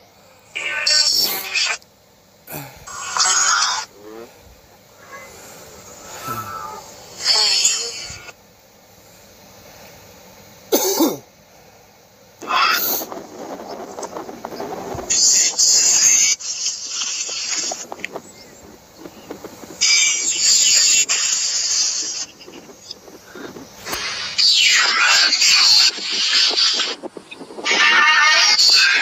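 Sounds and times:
loud high hiss: 0.0 - 29.0
breathy cough-like sounds: 10.7 - 11.2
recording crackle: 12.4 - 29.0.

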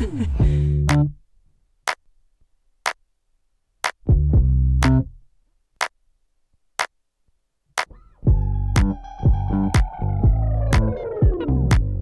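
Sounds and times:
background music beat: 0.4 - 1.2, 1.8 - 2.1, 3.8 - 6.0, 7.7 - 12.0.

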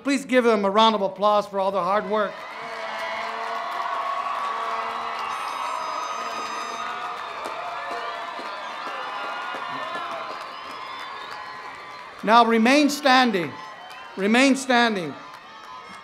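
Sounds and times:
stadium crowd cheering: 1.5 - 16.0
crowd clapping: 2.0 - 16.0.

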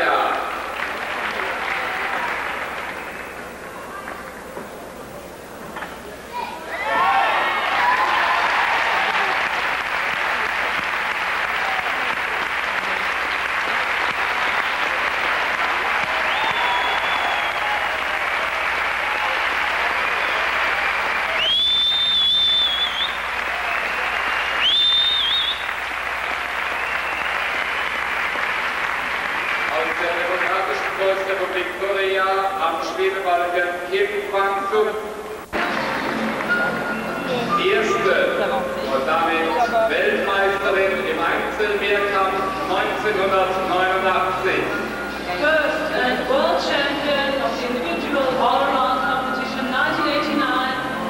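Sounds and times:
crowd applauding: 0.0 - 4.5, 6.7 - 32.6, 35.5 - 46.4
shrill whistles from crowd: 16.0 - 18.0, 20.1 - 25.8, 26.6 - 28.3.

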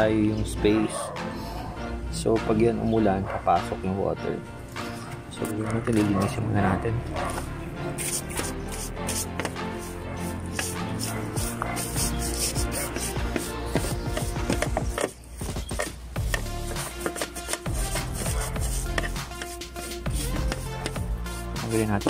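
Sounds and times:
background music: 0.0 - 22.0
brush scrubbing rubber seal: 7.3 - 22.0.

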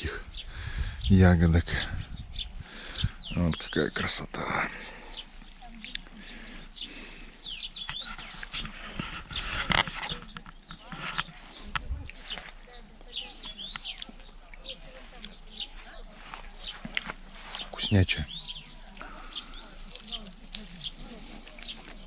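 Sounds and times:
small birds chirping: 0.0 - 22.0.

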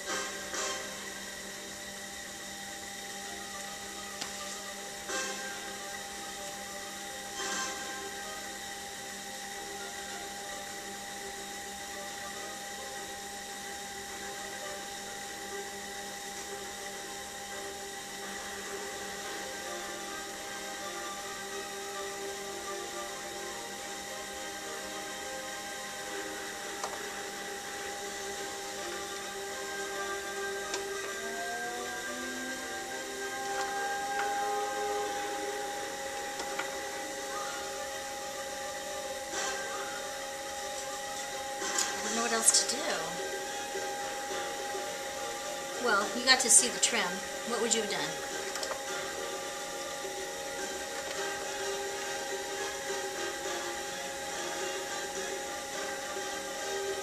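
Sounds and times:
potter's wheel motor whine: 0.0 - 57.0.

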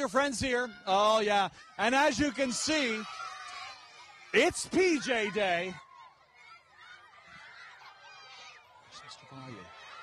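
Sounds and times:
children shouting and squealing: 0.0 - 10.0.

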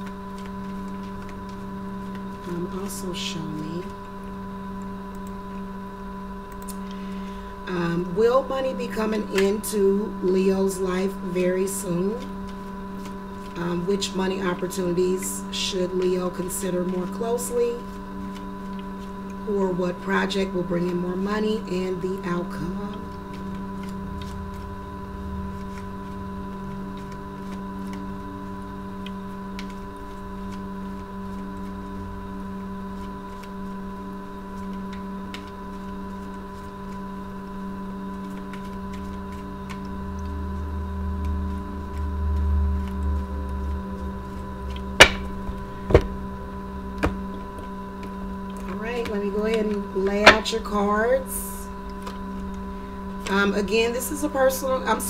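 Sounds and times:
cards being shuffled: 0.0 - 4.2, 11.2 - 19.5, 22.6 - 24.8, 25.4 - 33.8, 34.4 - 37.5, 38.1 - 46.2
steady hum of held tones: 0.0 - 55.0
sharp card clacks: 45.0 - 46.1.

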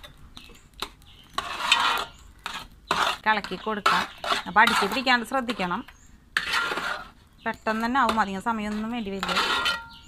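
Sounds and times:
spoon scraping metal pan: 0.8 - 10.0.

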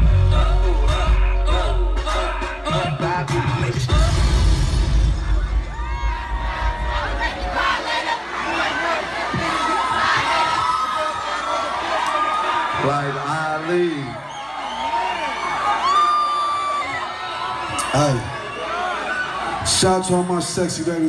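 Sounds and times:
bass-heavy hip hop music: 0.0 - 8.1
crowd cheering and screaming: 0.0 - 20.7.

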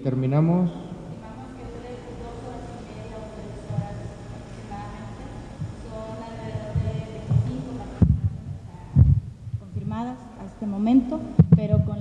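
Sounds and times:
microphone handling thumps: 6.4 - 10.0, 11.4 - 12.0.

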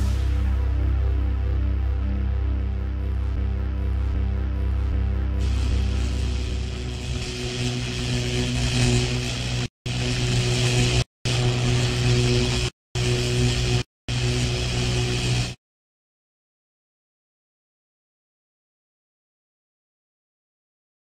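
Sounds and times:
loud dense buzzing: 0.0 - 15.6
steady low hum: 0.0 - 15.6.

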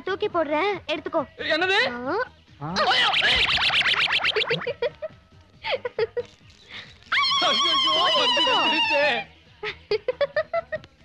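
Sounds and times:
high wavering whine: 2.9 - 4.7.

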